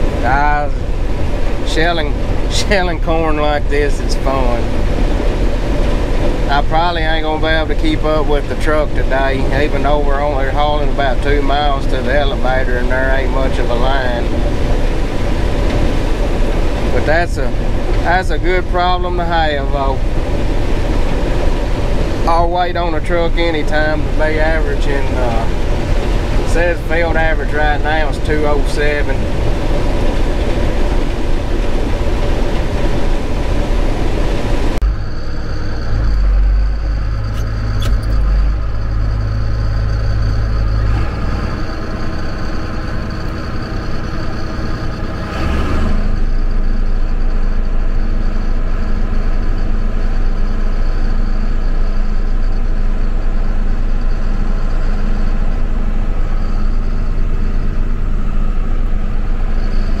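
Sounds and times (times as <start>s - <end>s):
combine harvester running: 0.0s - 60.0s
tractor engine running: 0.0s - 60.0s.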